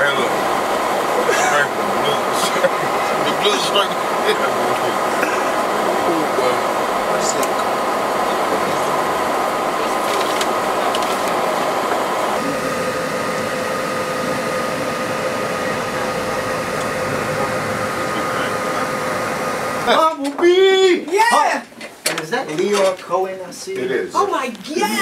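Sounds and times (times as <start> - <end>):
vehicle road noise: 0.0 - 19.9
faint steady tones: 0.0 - 20.8.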